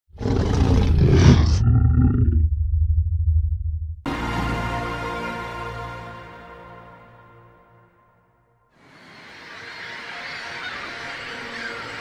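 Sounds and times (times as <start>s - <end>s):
low rumble: 0.9s - 4.1s.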